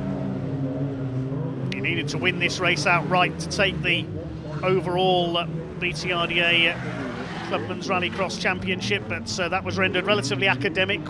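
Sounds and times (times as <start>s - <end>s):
race car engine: 0.0s - 11.0s.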